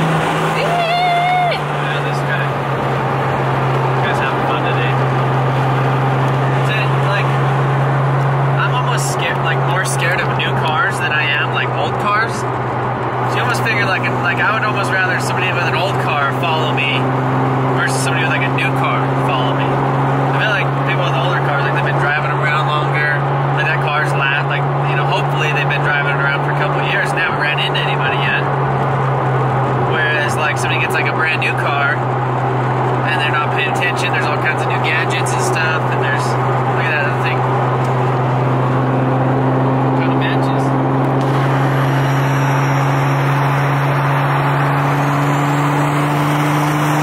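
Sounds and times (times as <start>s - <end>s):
car engine drone in cabin: 0.0s - 47.0s
road noise: 0.0s - 47.0s.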